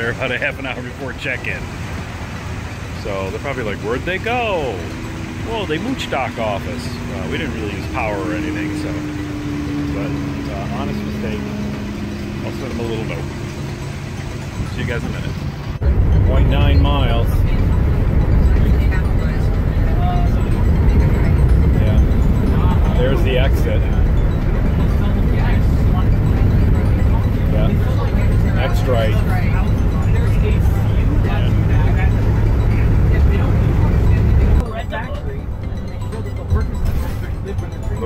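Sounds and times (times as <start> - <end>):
engine and road drone: 0.0 - 38.0.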